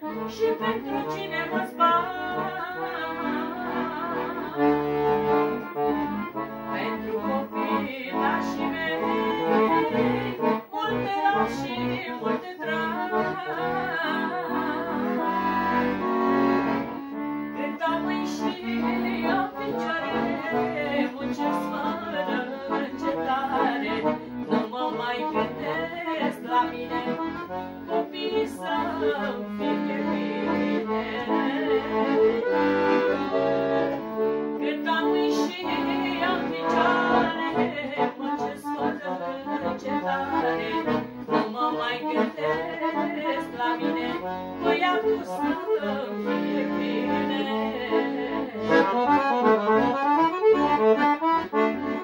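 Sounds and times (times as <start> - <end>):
woman singing: 0.0 - 16.2, 17.5 - 33.2, 34.6 - 52.0
accordions playing: 0.0 - 52.0.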